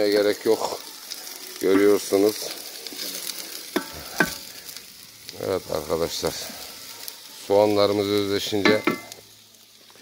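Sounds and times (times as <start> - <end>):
onions sizzling in a pan: 0.0 - 10.0.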